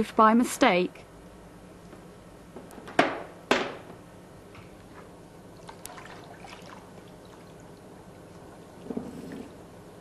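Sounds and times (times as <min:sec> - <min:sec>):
water swishing in plastic bucket: 0:05.6 - 0:07.6.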